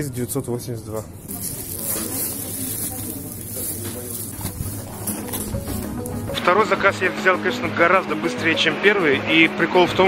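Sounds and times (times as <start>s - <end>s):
plastic bag rustling: 1.2s - 6.5s
background music: 1.4s - 10.0s.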